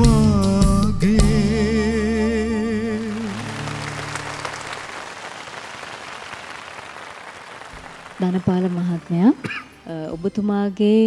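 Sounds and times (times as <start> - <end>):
band backing: 0.0 - 10.0
audience applauding: 2.8 - 9.8.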